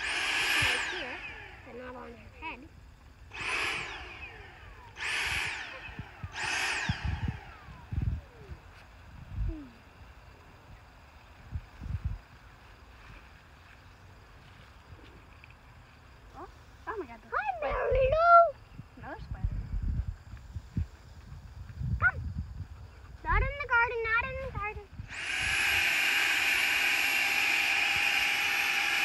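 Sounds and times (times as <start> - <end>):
handheld vacuum motor whine: 0.0 - 8.9, 25.0 - 29.0.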